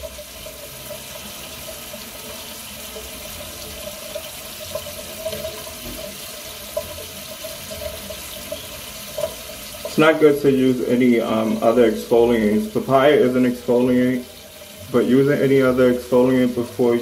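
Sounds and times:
water tap running into sink: 0.0 - 17.0.

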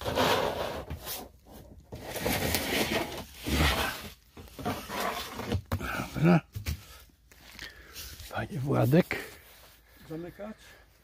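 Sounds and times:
plastic tray scraping on floor: 0.0 - 1.3, 1.9 - 5.7.

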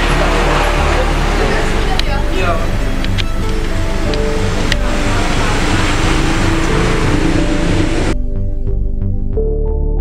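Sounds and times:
loud rushing noise: 0.0 - 8.2
soft background music: 0.0 - 10.0.

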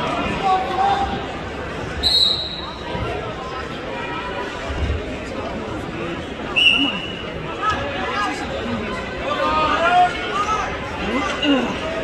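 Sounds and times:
crowd chatter: 0.0 - 12.0
spectators talking and shouting: 0.0 - 12.0.

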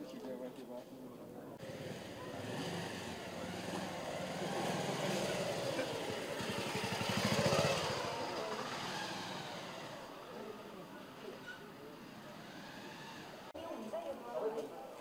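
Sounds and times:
motorcycle passing by: 1.6 - 13.5.

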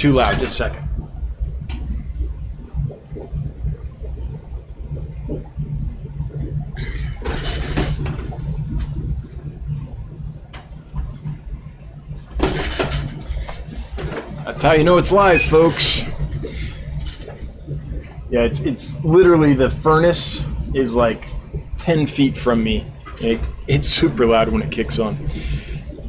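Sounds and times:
furnace rumbling: 0.0 - 26.0.

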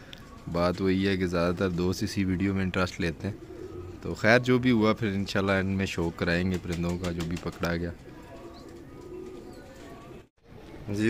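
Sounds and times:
pigeons cooing: 0.0 - 10.3.

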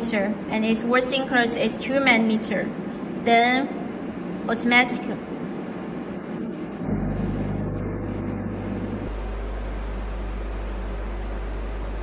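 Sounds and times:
welding machine humming: 6.5 - 10.5.

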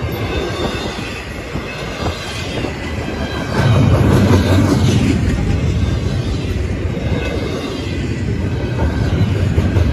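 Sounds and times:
train wheels clattering on rails: 0.0 - 9.9.

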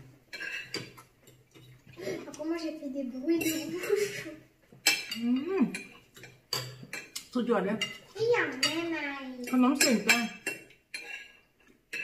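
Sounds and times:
cutlery clinking on plates: 0.3 - 2.2, 3.3 - 12.0.

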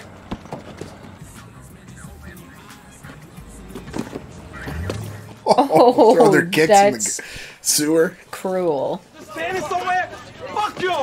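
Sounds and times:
music: 0.0 - 6.2
street sounds: 0.0 - 7.6.

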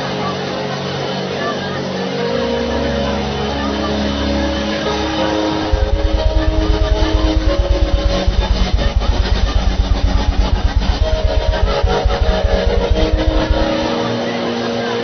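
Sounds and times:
sustained keyboard chords: 5.3 - 14.6
pulsing low bass note: 5.6 - 14.3.

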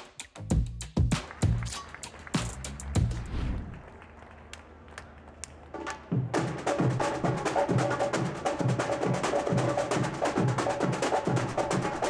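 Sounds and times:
quiet street ambience: 1.8 - 10.3.

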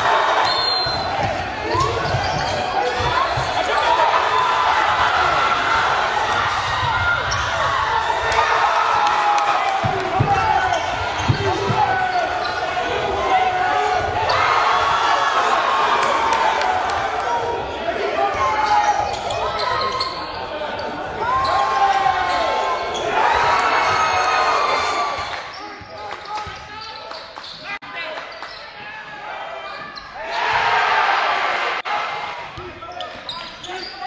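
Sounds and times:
spectators shouting and cheering: 0.0 - 34.0.

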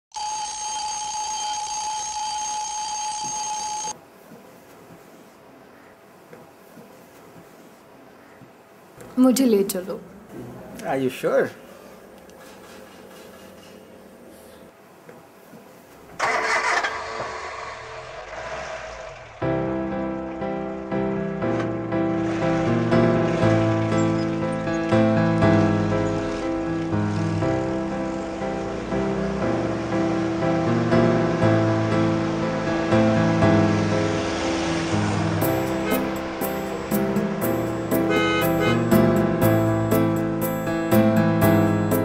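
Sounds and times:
alarm clock ringing: 0.1 - 4.0
engine starting: 16.1 - 19.4
music with sustained notes: 19.4 - 42.0.

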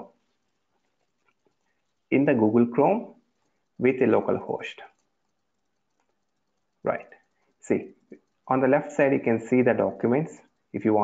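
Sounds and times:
soft ticks: 0.0 - 2.1, 3.1 - 10.9.

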